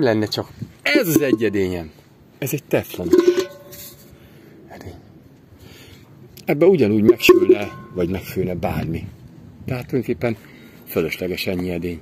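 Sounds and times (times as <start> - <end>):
metal pot clanking: 3.0 - 4.0, 7.1 - 8.0
pot handling: 3.0 - 4.1, 7.1 - 8.0.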